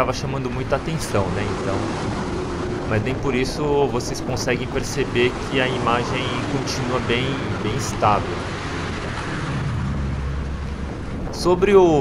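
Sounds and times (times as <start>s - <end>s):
road traffic passing: 0.0s - 12.0s
wind rumbling on microphone: 0.0s - 12.0s.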